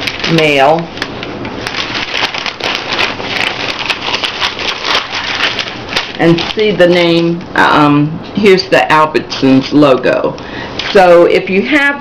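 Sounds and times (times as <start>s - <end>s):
paper rustling and crinkling: 0.0s - 7.4s.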